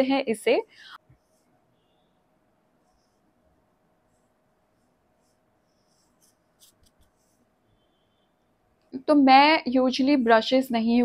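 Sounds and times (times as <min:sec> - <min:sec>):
fingertips rubbing skin: 0:04.2 - 0:07.5.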